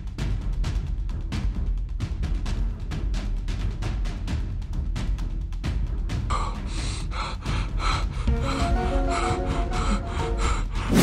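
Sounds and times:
man panting hard: 6.3s - 11.0s.

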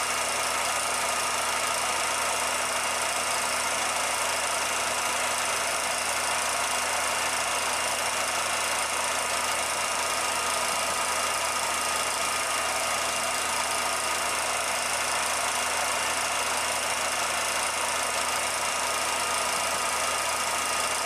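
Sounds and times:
film projector whirring: 0.0s - 21.0s.

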